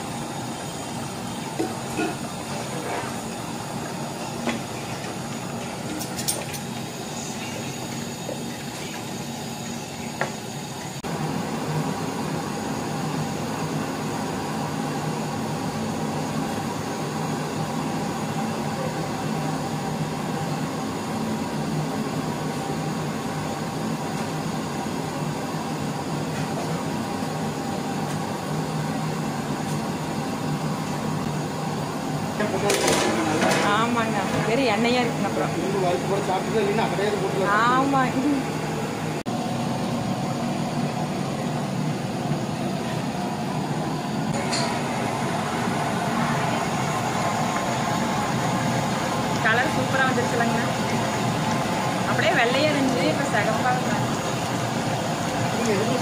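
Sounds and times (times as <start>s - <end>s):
gas burner roaring: 0.0s - 56.0s.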